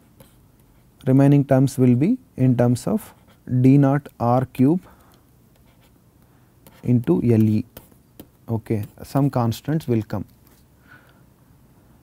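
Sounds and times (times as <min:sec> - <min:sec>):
stylus scratching and tapping: 0:05.5 - 0:10.7.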